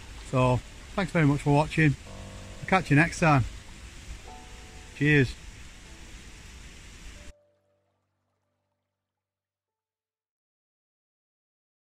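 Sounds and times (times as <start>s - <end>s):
water rushing over rapids: 0.0s - 7.3s.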